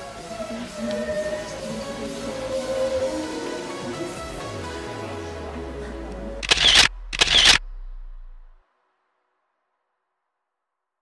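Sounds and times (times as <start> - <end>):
background music: 0.0 - 7.9
camera shutter clicks: 6.4 - 7.6.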